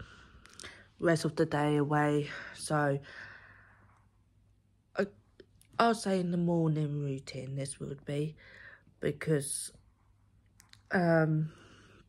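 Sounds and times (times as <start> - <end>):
woman speaking: 1.0 - 3.2, 5.0 - 9.8, 10.9 - 11.6.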